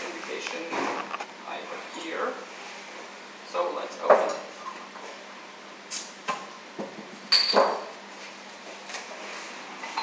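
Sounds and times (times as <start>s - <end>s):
glass clinks: 7.3s - 7.8s.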